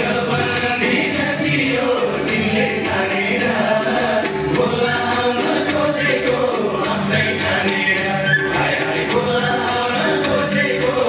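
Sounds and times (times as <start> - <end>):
amplified backing music: 0.0 - 11.0
man singing into a microphone: 0.0 - 11.0.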